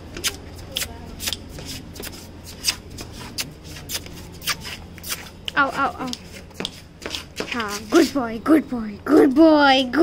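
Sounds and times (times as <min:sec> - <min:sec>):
puppy scratching on stone floor: 0:00.1 - 0:08.4.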